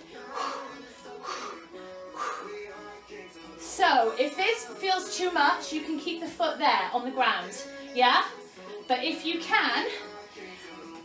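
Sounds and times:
workout music with sustained tones: 0.0s - 11.0s.

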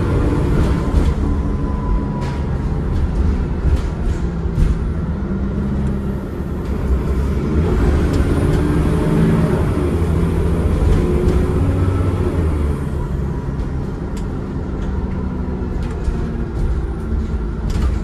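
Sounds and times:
bus diesel engine: 0.0s - 18.0s
bus gearbox: 13.5s - 18.0s.

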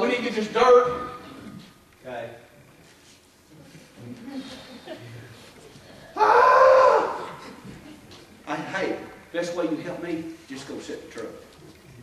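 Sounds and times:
man's exasperated cry: 6.2s - 7.4s.

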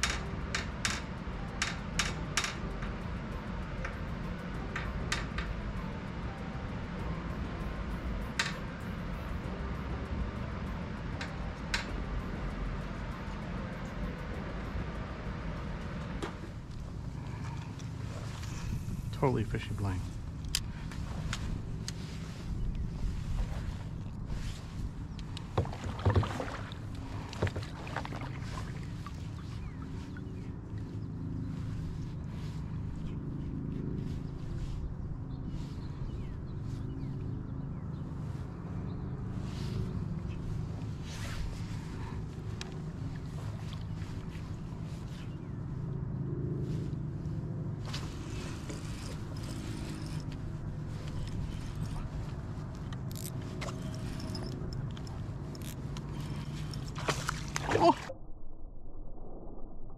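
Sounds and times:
wind on microphone: 18.0s - 19.2s
water lapping against kayak hull: 25.4s - 30.5s, 55.0s - 58.1s.

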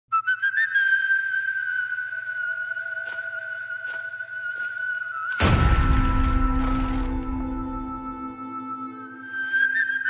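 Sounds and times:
person whistling a tune: 7.4s - 10.0s.

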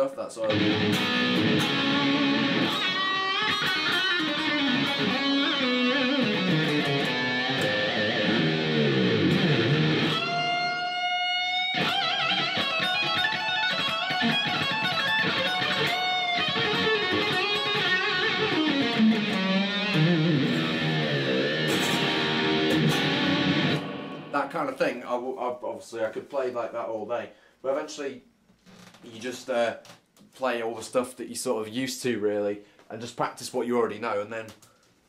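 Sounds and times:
electric guitar solo: 0.4s - 24.4s.

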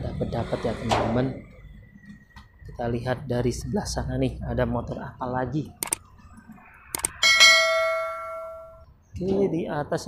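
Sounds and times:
click: 5.8s - 6.0s
bell ringing: 7.0s - 8.9s.

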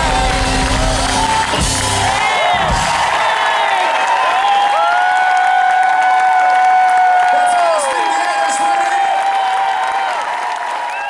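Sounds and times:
audience applauding and cheering: 0.0s - 11.0s.

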